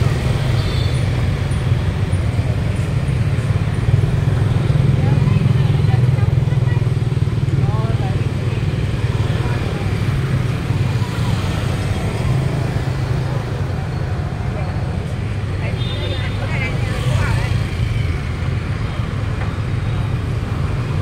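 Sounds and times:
indistinct chatter: 0:00.0 - 0:21.0
road traffic rumble: 0:00.0 - 0:21.0.

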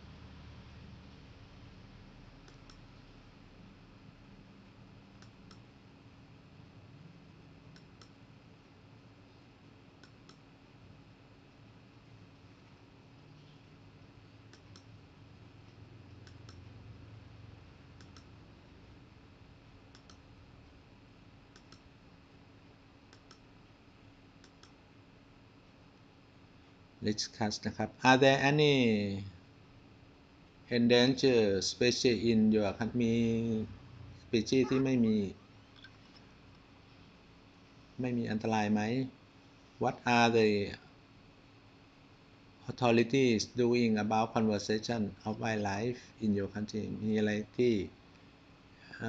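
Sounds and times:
low steady room hum: 0:00.0 - 0:49.0
faint computer mouse clicks: 0:02.4 - 0:02.8, 0:05.2 - 0:05.6, 0:07.7 - 0:08.2, 0:10.0 - 0:10.4, 0:14.5 - 0:14.9, 0:16.2 - 0:16.6, 0:18.0 - 0:18.3, 0:19.9 - 0:20.2, 0:21.5 - 0:21.9, 0:23.1 - 0:23.5, 0:24.4 - 0:24.8
computer control clicks: 0:18.0 - 0:18.3, 0:19.9 - 0:20.2, 0:21.5 - 0:21.8, 0:24.4 - 0:24.8.

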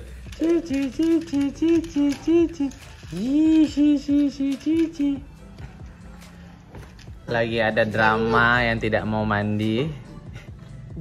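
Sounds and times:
person chanting syllables: 0:00.3 - 0:05.4.

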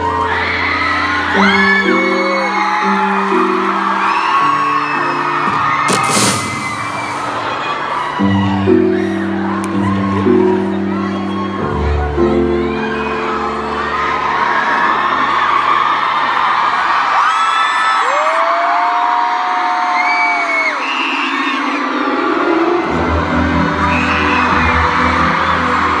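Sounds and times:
audience cheering and screaming: 0:00.0 - 0:26.0
high whoops: 0:17.1 - 0:21.8.

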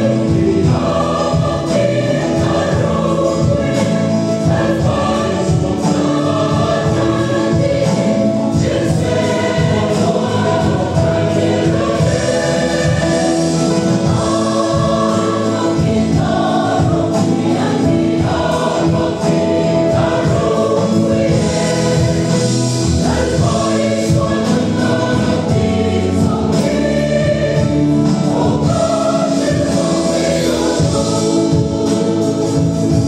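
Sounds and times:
choir singing a gospel hymn: 0:00.0 - 0:33.0.

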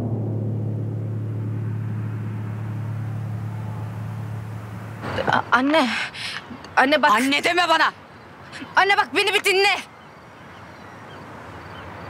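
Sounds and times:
deep sustained drone: 0:00.0 - 0:05.5.

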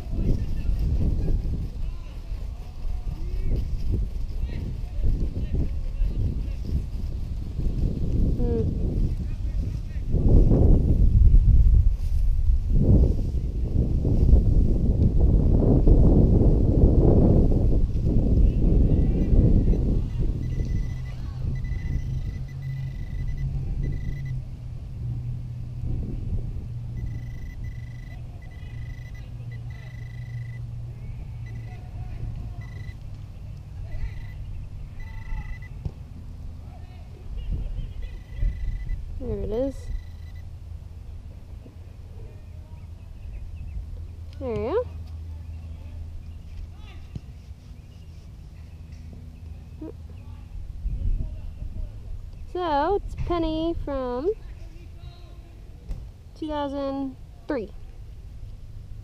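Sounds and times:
rustling and scraping of mulch: 0:00.0 - 0:10.1, 0:11.7 - 0:14.6, 0:44.9 - 0:50.4
metal detector electronic tone: 0:19.0 - 0:24.4, 0:27.0 - 0:30.6, 0:31.4 - 0:31.8, 0:32.6 - 0:33.0, 0:34.0 - 0:35.8, 0:38.1 - 0:40.5.

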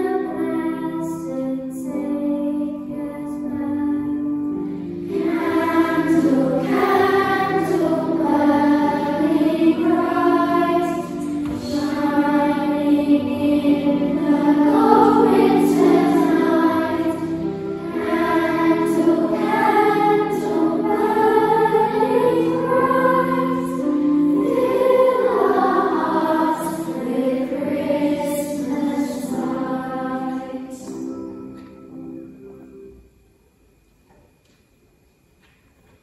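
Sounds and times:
children's choir singing: 0:00.0 - 0:32.0.

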